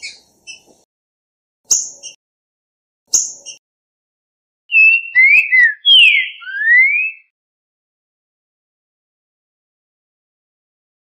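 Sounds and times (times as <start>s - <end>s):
whistled bird song: 4.7s - 7.4s.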